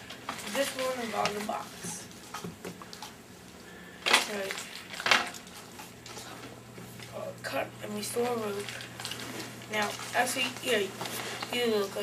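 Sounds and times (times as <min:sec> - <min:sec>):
low electrical hum: 0:00.0 - 0:12.0
person speaking: 0:00.4 - 0:02.1, 0:04.1 - 0:04.7, 0:06.1 - 0:09.0, 0:09.6 - 0:12.0.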